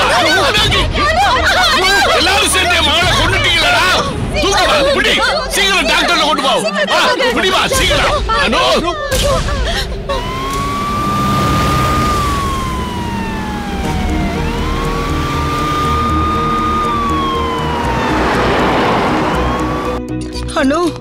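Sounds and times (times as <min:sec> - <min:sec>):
ambulance siren wailing: 0:10.1 - 0:20.1
vehicle road noise: 0:10.2 - 0:20.2.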